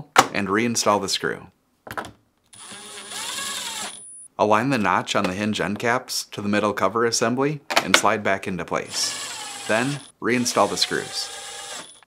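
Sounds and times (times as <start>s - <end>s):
cordless driver motor whine: 2.6s - 4.0s, 9.1s - 12.0s.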